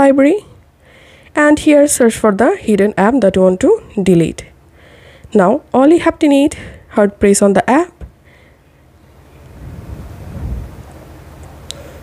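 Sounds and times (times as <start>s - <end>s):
low muffled rumble: 9.5s - 11.0s.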